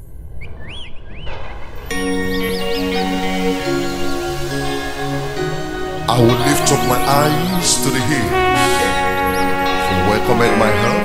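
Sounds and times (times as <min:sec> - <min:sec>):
music with sustained notes: 0:01.4 - 0:11.0.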